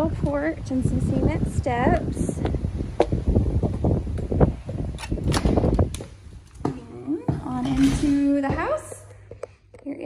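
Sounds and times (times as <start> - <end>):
footsteps on wooden deck: 5.6 - 9.4.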